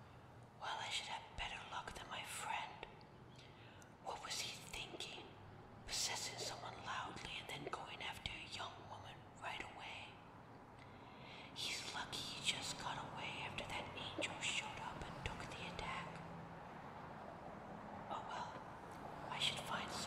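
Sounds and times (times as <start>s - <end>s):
soft breathy whispering: 0.0s - 16.6s, 17.7s - 20.0s.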